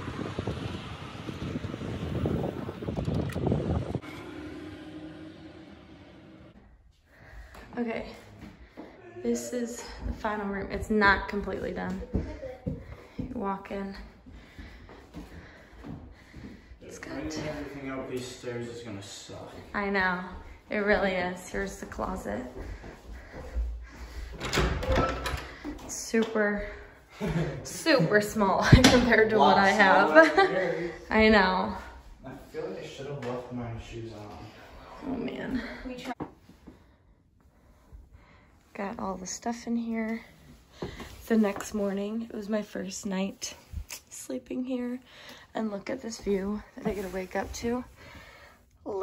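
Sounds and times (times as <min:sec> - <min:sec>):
wind buffeting microphone: 0:00.0 - 0:04.0
wooden door opening: 0:24.3 - 0:25.8
latch clicks and rattles: 0:24.4 - 0:25.6.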